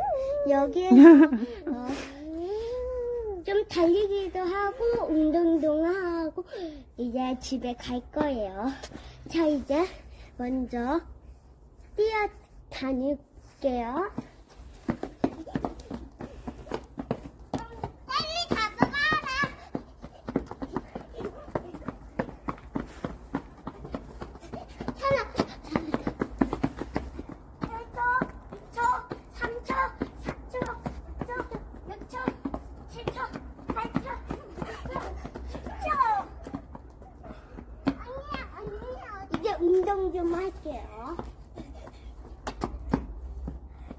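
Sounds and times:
children squealing and shouting: 0.0 - 1.1, 17.5 - 23.0, 33.0 - 40.0.

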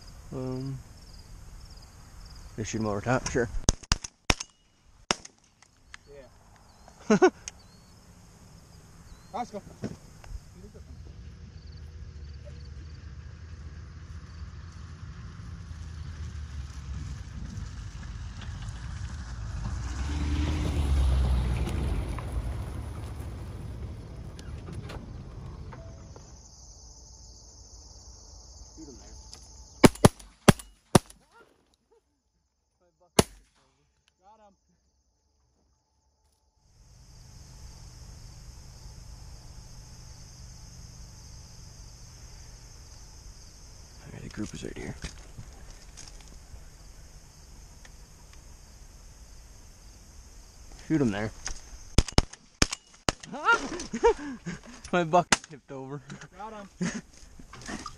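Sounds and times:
insects chirping: 0.0 - 57.9
shotgun shots: 3.6 - 5.5, 29.8 - 31.2, 33.2 - 33.5, 52.0 - 53.3
low rumble: 21.5 - 26.4.

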